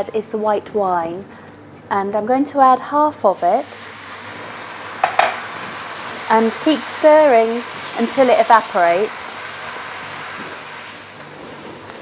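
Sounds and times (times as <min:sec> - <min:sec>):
rice and onion sizzling in a pan: 0:03.2 - 0:12.0.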